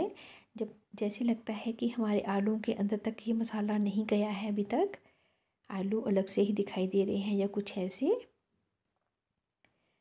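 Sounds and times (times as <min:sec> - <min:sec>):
woman's voice: 0:00.0 - 0:05.0, 0:05.7 - 0:08.4.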